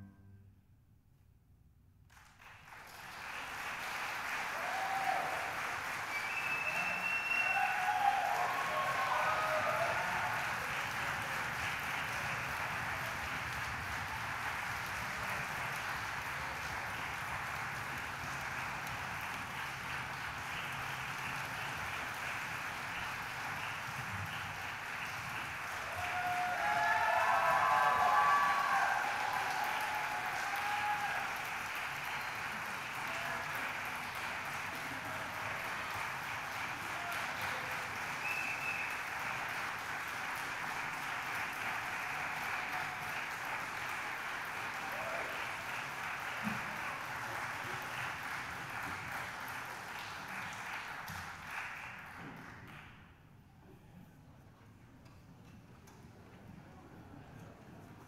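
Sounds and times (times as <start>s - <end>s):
audience applauding: 2.1s - 53.1s
cheers and whoops: 4.4s - 11.4s, 25.6s - 33.7s, 36.7s - 39.1s, 41.8s - 43.4s, 44.6s - 45.8s.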